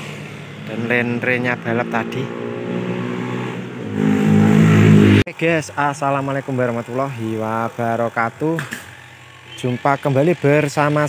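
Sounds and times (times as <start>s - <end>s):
vehicle engine revving: 0.0s - 5.3s.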